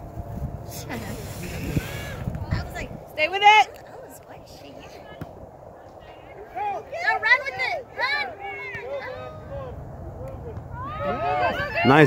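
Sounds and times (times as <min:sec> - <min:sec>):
outdoor background noise: 0:00.0 - 0:12.0
distant high-pitched shouts: 0:10.7 - 0:12.0.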